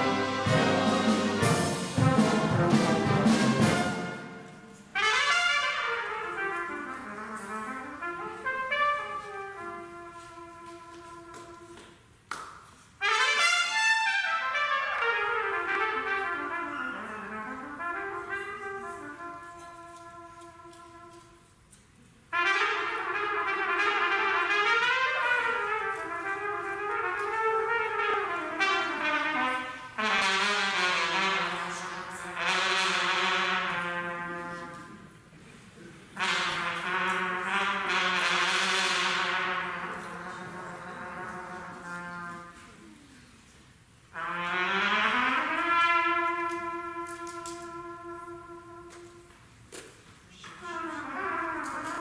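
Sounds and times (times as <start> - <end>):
trumpet solo: 0.0 - 11.8, 13.0 - 21.4, 22.3 - 34.9, 36.2 - 42.7, 44.1 - 49.3, 50.7 - 52.0
wind band playing: 0.0 - 11.9, 13.0 - 21.5, 22.3 - 35.2, 36.0 - 43.2, 43.9 - 49.4, 50.6 - 52.0
trumpet long held note: 44.1 - 49.3.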